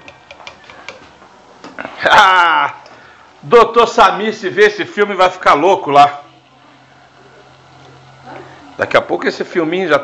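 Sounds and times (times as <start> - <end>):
spoon tapping clay pot: 0.0 - 1.0.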